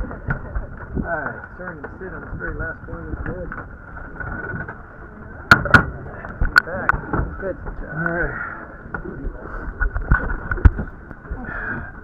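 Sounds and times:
sharp knocks: 5.5s - 6.0s.

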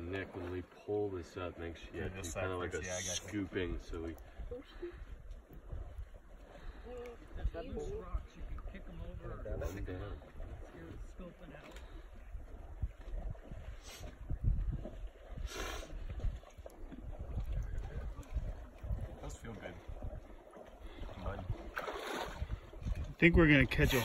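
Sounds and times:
wind rumbling on microphone: 2.9s - 24.0s.

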